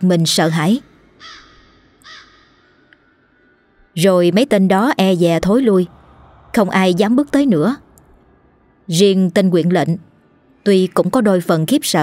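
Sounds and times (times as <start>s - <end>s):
crow cawing: 1.2s - 3.5s.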